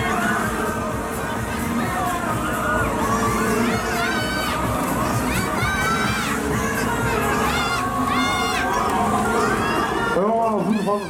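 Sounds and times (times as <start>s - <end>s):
riders screaming: 1.6s - 11.0s.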